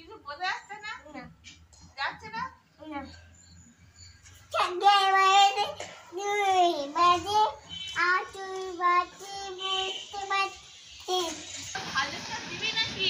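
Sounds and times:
child singing in high voice: 0:04.5 - 0:11.5.

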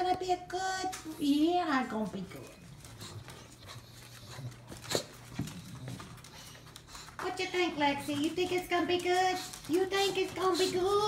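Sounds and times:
dog moving on tile floor: 0:00.0 - 0:11.0.

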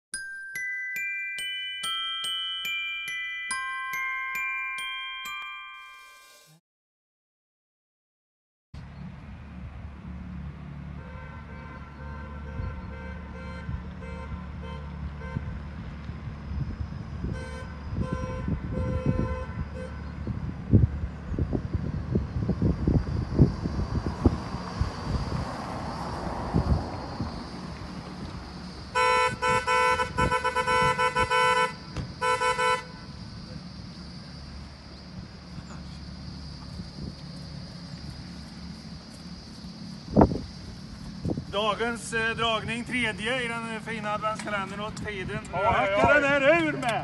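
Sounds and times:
car horn honking: 0:11.0 - 0:15.6, 0:17.2 - 0:20.0, 0:28.9 - 0:33.2.

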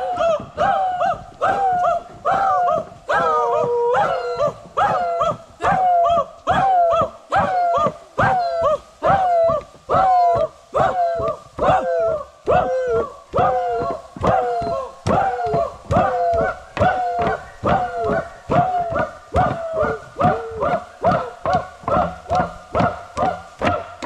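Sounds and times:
group chanting war cries: 0:00.0 - 0:24.0.

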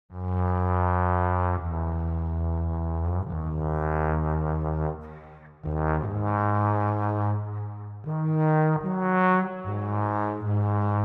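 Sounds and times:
trombones holding low chords: 0:00.2 - 0:11.0.

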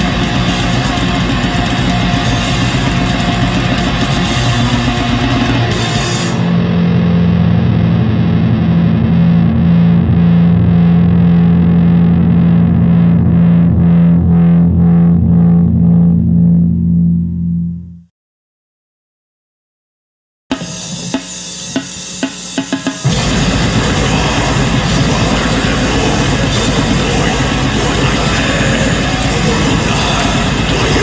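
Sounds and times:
heavy metal band playing: 0:00.0 - 0:16.7, 0:20.5 - 0:31.0
distorted guitar chord ringing: 0:00.0 - 0:18.1, 0:20.5 - 0:31.0.

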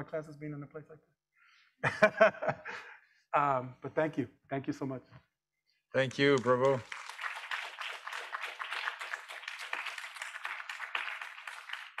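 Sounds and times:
audience applauding: 0:06.0 - 0:12.0.

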